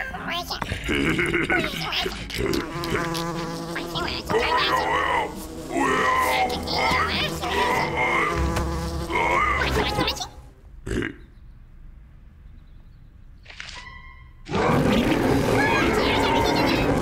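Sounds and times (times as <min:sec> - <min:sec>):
commotion: 0:00.0 - 0:11.3, 0:14.4 - 0:17.0
bear grunting: 0:00.6 - 0:11.4, 0:14.5 - 0:17.0
cartoon fly buzzing: 0:01.6 - 0:10.4, 0:14.5 - 0:17.0.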